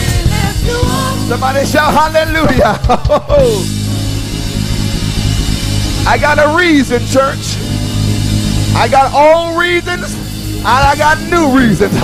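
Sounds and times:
live band playing instrumental: 0:00.0 - 0:12.0.

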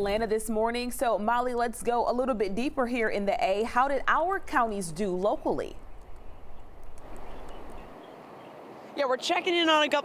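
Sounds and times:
low hum: 0:00.0 - 0:08.0
distant city traffic hiss: 0:00.1 - 0:09.7.

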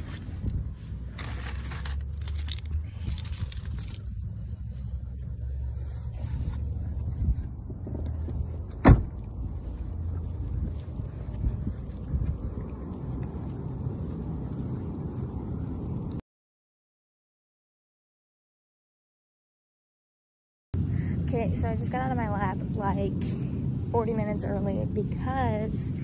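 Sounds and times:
low handling rumble: 0:00.0 - 0:16.2
rustling and shuffling: 0:00.0 - 0:16.2
footsteps on asphalt: 0:00.2 - 0:16.2.

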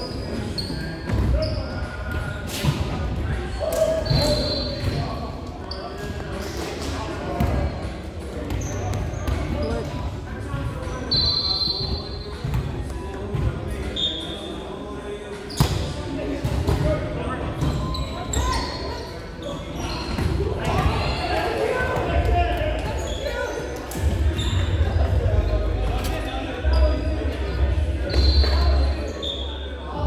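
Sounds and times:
sneaker squeaks: 0:00.0 - 0:12.7, 0:13.3 - 0:14.7, 0:15.4 - 0:16.0, 0:17.5 - 0:22.0, 0:22.8 - 0:30.0
voices chattering: 0:00.0 - 0:30.0.

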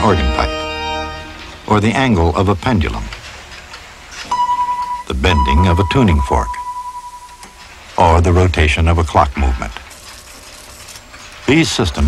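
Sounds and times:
tuning fork ringing: 0:04.3 - 0:07.6.

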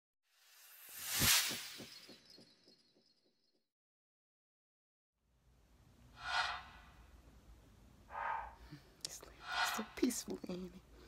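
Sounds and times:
woman's voice: 0:09.1 - 0:10.8.

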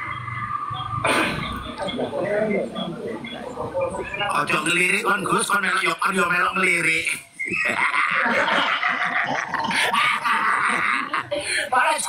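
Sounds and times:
high-pitched laughter: 0:07.4 - 0:11.4.

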